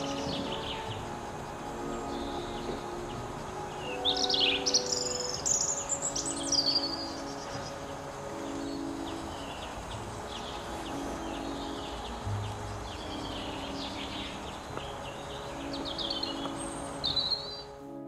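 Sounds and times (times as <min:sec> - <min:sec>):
songbird chirping and trilling: 0:00.0 - 0:18.0.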